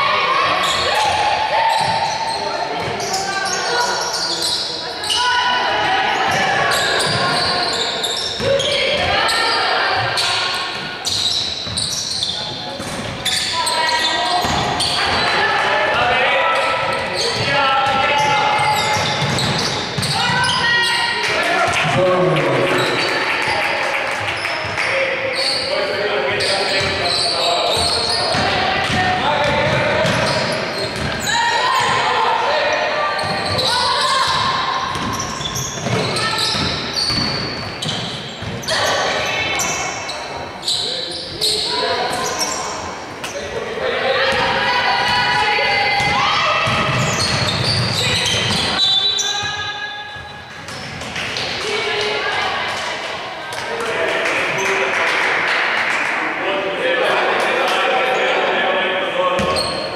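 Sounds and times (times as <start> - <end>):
voices in sports hall: 0.0 - 59.9.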